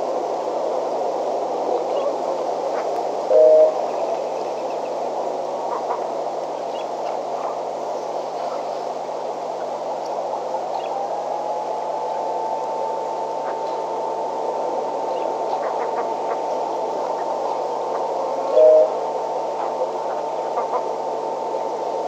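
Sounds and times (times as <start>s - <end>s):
faint steady whine: 0.0s - 22.0s
microphone hiss and hum: 0.0s - 22.0s.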